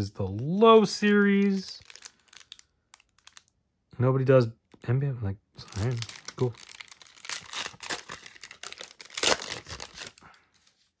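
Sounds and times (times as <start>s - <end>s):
foil wrapper tearing and crinkling: 1.0s - 3.5s, 5.7s - 10.2s.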